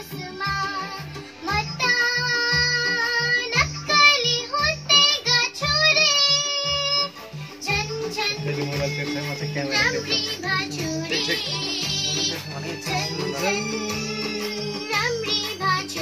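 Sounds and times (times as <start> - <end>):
girl singing with long held notes: 0.0 - 16.0.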